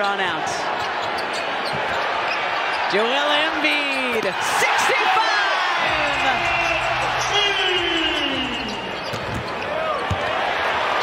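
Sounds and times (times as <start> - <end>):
crowd noise: 0.0 - 11.0
people shouting: 4.4 - 8.9
sneaker squeaks on court: 8.6 - 10.3.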